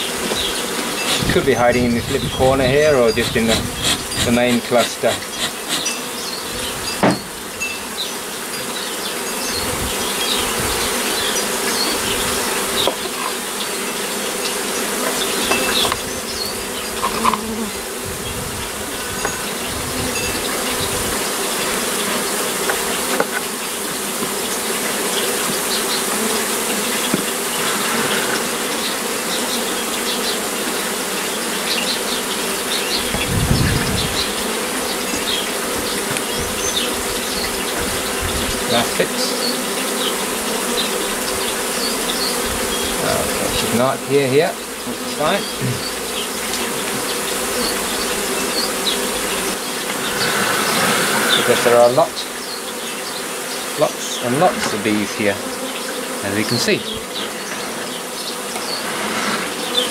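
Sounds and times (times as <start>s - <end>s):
honeybee colony buzzing loudly: 0.0s - 59.9s
brief knocks: 7.0s - 7.3s.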